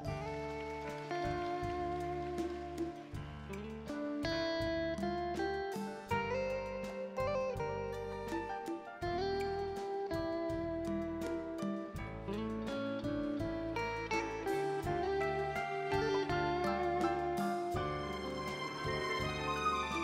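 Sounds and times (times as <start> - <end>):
live band playing: 0.0 - 20.0
plucked guitar: 0.0 - 20.0
steady bass line: 0.0 - 20.0.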